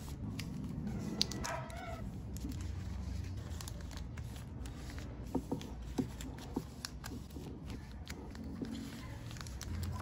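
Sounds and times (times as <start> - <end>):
plastic card sleeves rustling: 0.0 - 10.0.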